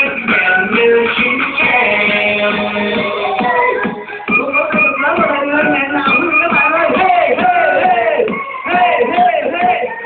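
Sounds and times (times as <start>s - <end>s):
loud pop song: 0.0s - 10.0s.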